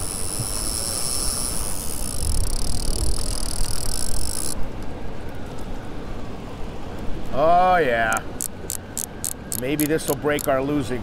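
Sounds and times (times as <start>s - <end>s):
fast river water rushing: 5.8s - 11.0s.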